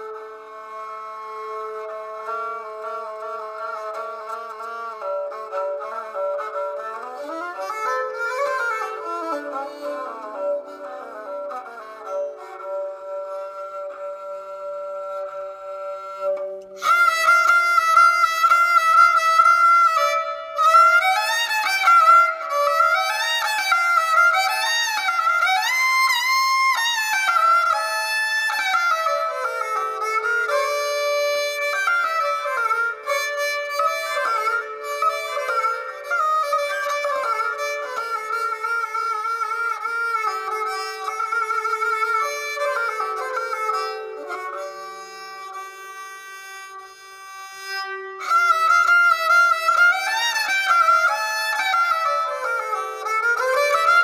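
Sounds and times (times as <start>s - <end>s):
bowed fiddle folk melody: 0.0s - 54.0s.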